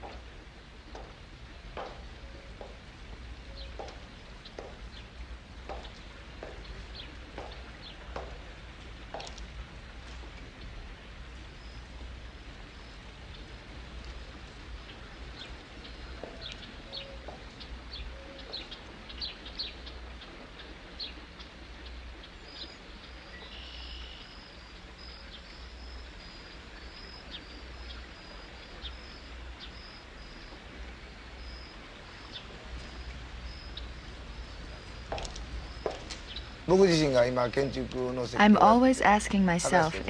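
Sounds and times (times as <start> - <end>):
steady low hum: 0.0 - 23.5, 24.2 - 40.0
birds chirping: 0.0 - 40.0.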